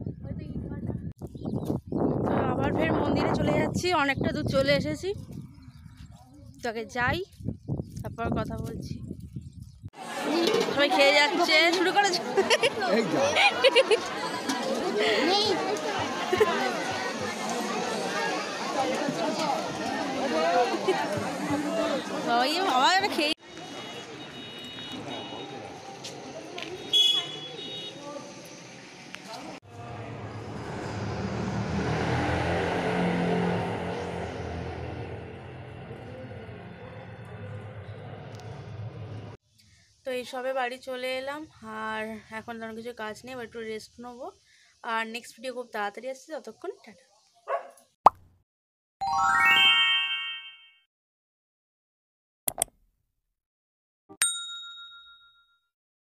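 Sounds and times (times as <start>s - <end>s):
vehicle engine rumble: 28.3s - 39.4s
bright bell ding: 54.2s - 55.7s.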